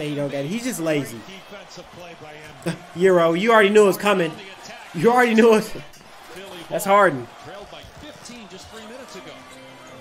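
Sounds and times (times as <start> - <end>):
commentator talking: 0.0 - 9.3.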